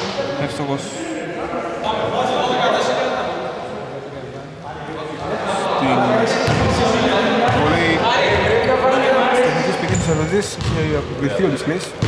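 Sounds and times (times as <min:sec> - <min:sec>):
basketball bouncing on wooden court: 0:09.9 - 0:10.9.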